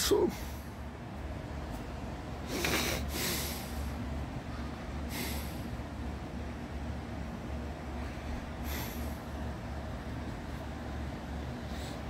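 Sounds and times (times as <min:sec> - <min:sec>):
steady low hum: 0:00.0 - 0:12.0
breath close to microphone: 0:05.1 - 0:05.7, 0:08.6 - 0:09.2.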